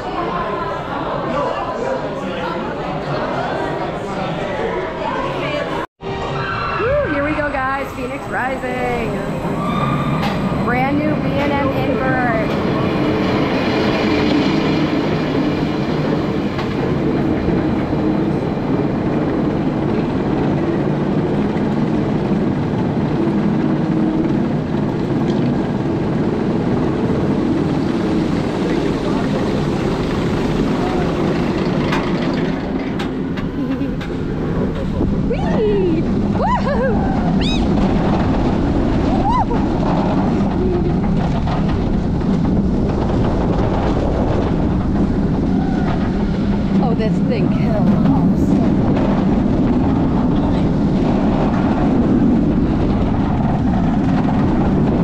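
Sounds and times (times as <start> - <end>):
roller coaster mechanical rumble: 5.2 - 55.0
wind rush on microphone: 7.0 - 55.0.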